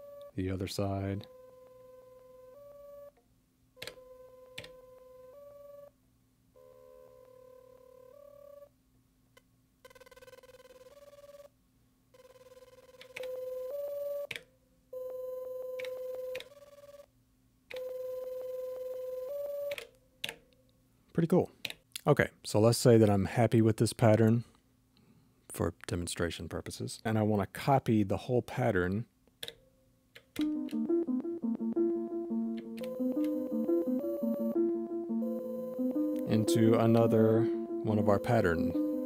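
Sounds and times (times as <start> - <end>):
looping beep-like synth tones: 30.4 - 39.0.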